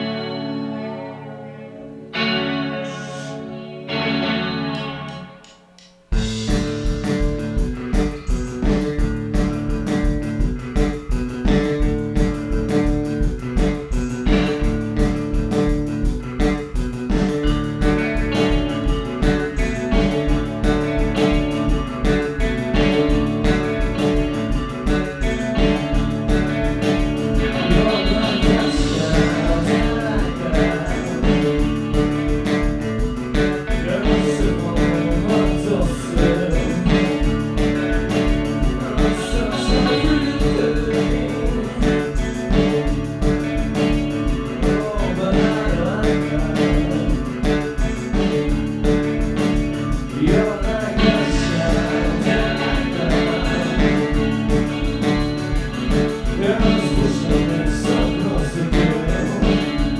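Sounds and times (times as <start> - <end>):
person singing: 0.0 - 5.5, 18.1 - 59.9
bass guitar: 0.0 - 59.9
electric guitar: 0.0 - 59.9
drum beat: 5.4 - 59.9.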